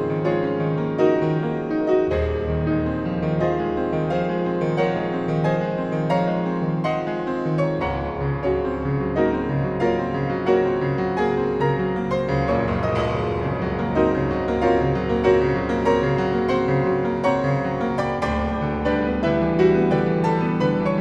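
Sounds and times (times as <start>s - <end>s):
solo piano music: 0.0s - 21.0s.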